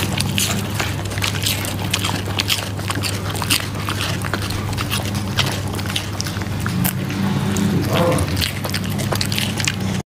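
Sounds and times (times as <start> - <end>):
dog chewing with crunchy clicks: 0.0 - 10.0
steady low hum: 0.0 - 10.0.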